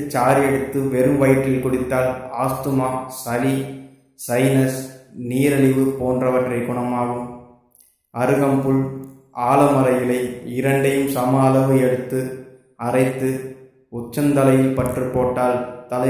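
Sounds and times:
man chanting: 0.0 - 7.3, 8.2 - 13.4, 14.0 - 16.0.

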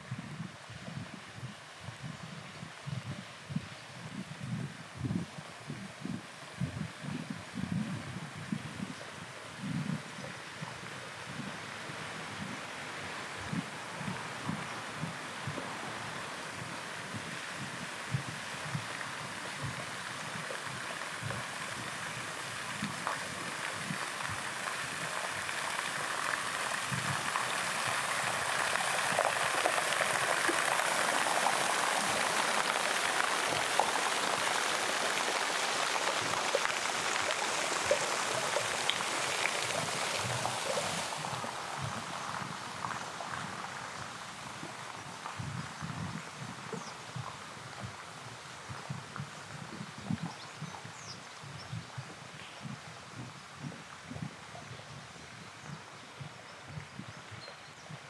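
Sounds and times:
rushing water: 0.0 - 58.0.

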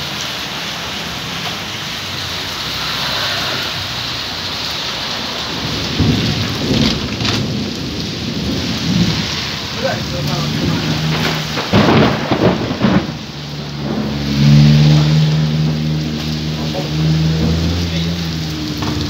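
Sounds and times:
steady rain falling: 0.0 - 19.0
rolling thunder: 5.2 - 19.0.

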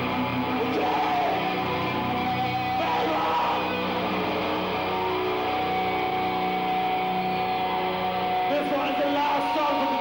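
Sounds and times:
amplified guitars ringing: 0.0 - 10.0.

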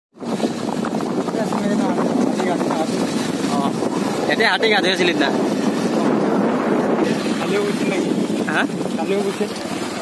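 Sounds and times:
steady rushing noise: 0.2 - 10.0
voices talking: 1.2 - 10.0.

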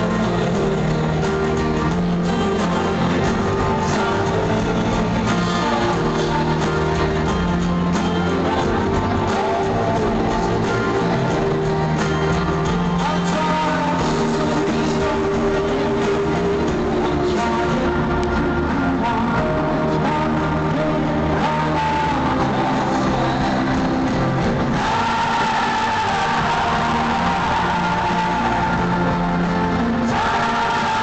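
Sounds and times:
crowd singing: 0.0 - 31.0
live pop-rock music over loudspeakers: 0.0 - 31.0.

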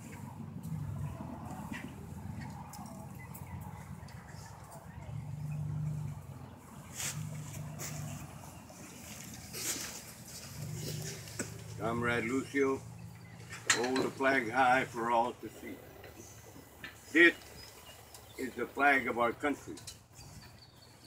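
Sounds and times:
low steady rumble: 0.0 - 21.0.

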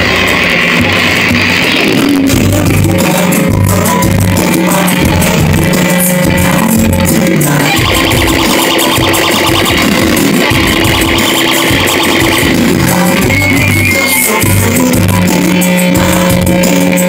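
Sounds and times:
live band instrumental with guitar: 0.0 - 17.0.

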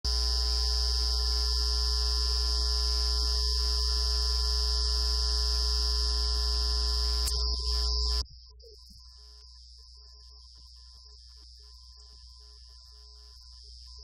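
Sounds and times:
high-pitched whine: 6.8 - 14.0.

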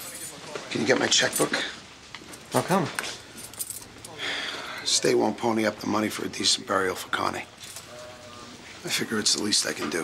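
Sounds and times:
keys jingling on key ring: 3.3 - 4.2.

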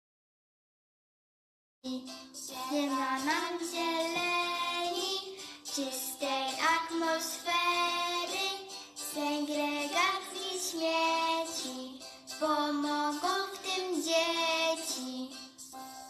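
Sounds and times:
girl singing unaccompanied: 1.8 - 15.6.

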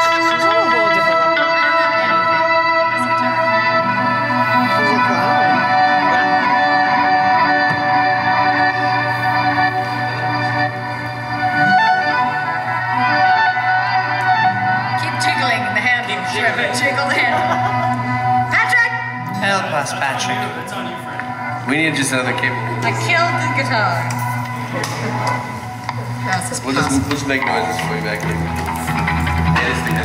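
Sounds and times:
guitar through effects: 0.0 - 30.0
guitars droning: 0.0 - 30.0
violin droning: 0.0 - 30.0.

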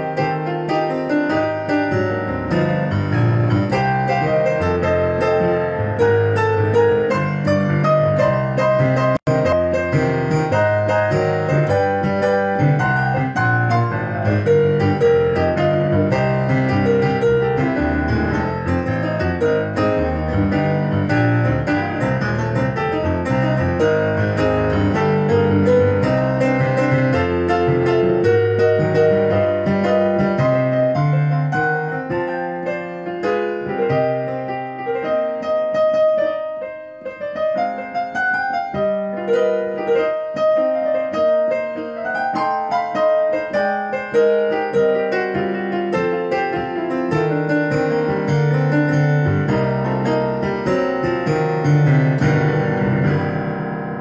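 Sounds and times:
digital piano playing: 0.0 - 54.0.

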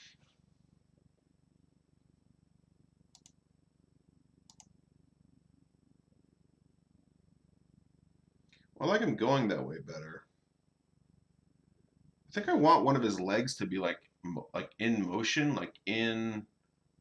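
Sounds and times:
faint low hum: 0.0 - 17.0.

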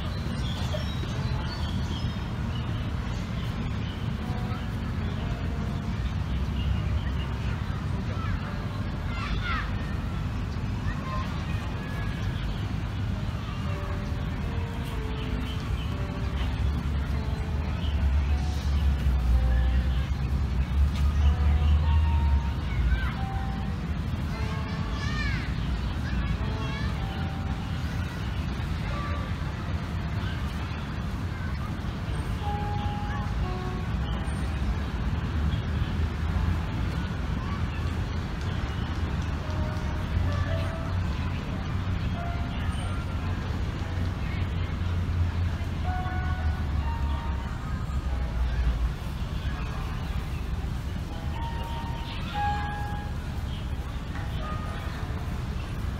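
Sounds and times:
road traffic rumble: 0.0 - 55.9.

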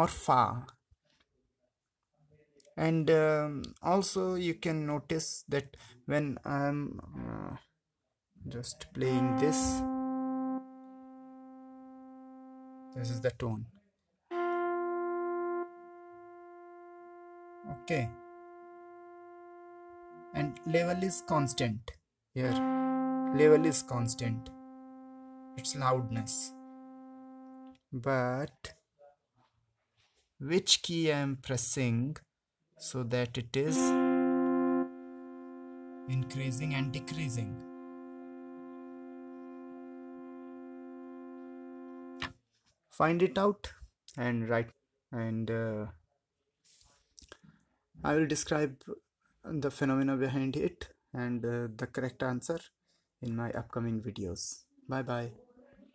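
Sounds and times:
electronic keyboard held note: 9.0 - 13.2, 14.3 - 21.7, 22.4 - 27.7, 33.6 - 42.3.

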